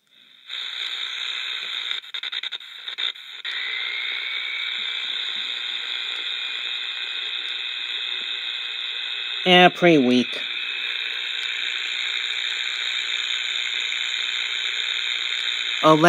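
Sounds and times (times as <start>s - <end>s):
shortwave radio static hiss: 0.0s - 16.0s.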